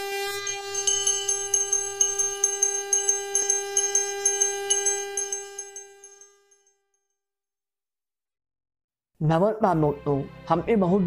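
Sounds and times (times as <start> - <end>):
conch shell blown: 0.0 - 6.6
hand bell ringing rapidly: 0.3 - 6.7.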